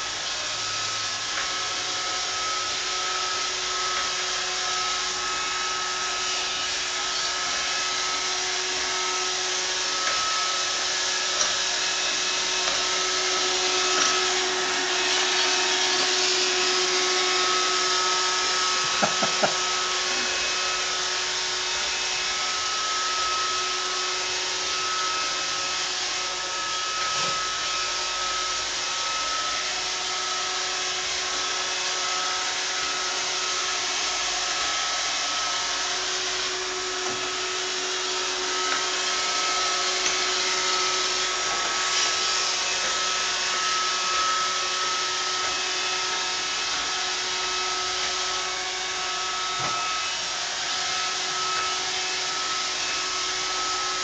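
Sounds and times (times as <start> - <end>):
robot vacuum running: 0.0 - 54.0.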